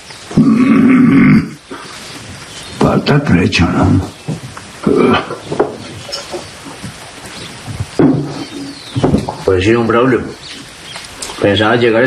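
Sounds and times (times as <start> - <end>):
man humming grunt: 0.4 - 1.6.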